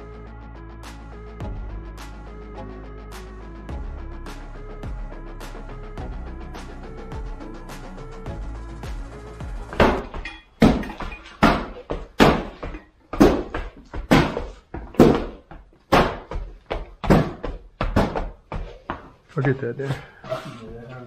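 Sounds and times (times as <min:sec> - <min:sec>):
music: 0:00.0 - 0:14.4
heavy thuds of stamp mats: 0:11.4 - 0:18.6.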